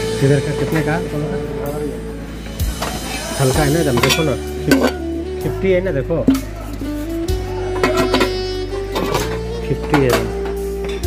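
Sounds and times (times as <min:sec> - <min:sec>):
background music with held notes: 0:00.0 - 0:11.0
steady bass line: 0:00.0 - 0:11.0.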